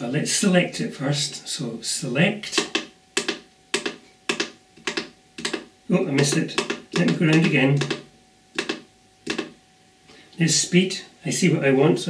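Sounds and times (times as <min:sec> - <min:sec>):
keypad button clicks: 0:02.6 - 0:08.0, 0:08.6 - 0:09.6.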